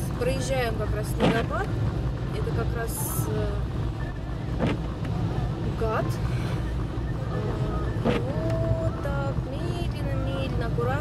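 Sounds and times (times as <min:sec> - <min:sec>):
car engine and tyres on wet road: 0:00.0 - 0:11.0.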